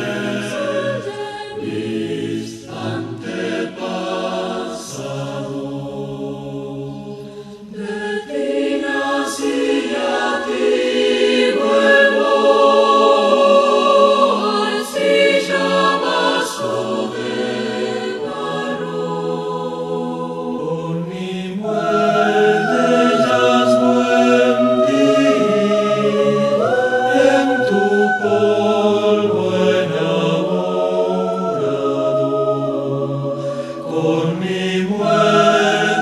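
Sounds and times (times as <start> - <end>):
choir singing in harmony: 0.0 - 36.0.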